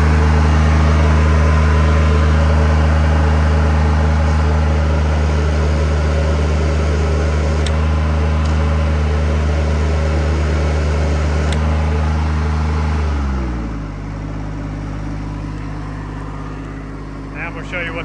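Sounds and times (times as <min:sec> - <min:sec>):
high-pressure water pump: 0:00.0 - 0:17.1
diesel engine running steadily: 0:00.0 - 0:18.0.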